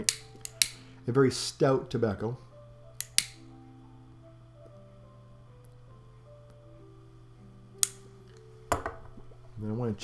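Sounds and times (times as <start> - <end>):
metal pipe lighter click: 0.0 - 0.8, 3.0 - 3.5, 7.8 - 8.0
soft background music: 0.0 - 10.0
steady low hum: 0.0 - 10.0.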